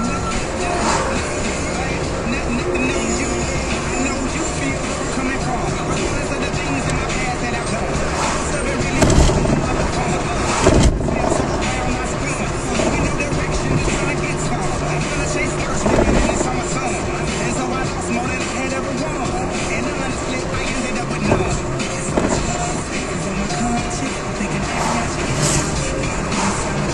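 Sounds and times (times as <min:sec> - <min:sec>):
car radio music with vocals: 0:00.0 - 0:26.9
road and engine noise: 0:00.0 - 0:26.9
low thumps: 0:05.6 - 0:18.3, 0:21.2 - 0:26.9.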